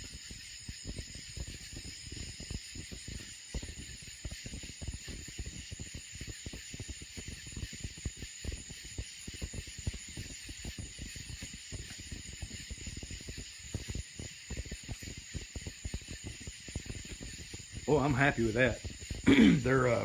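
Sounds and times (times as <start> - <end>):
high-pitched night hiss: 0.0 - 20.0.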